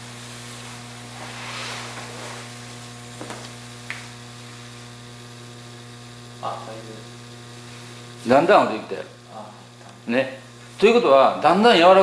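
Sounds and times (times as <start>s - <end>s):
electrical mains hum: 0.0s - 12.0s
soft rustling: 0.3s - 4.1s.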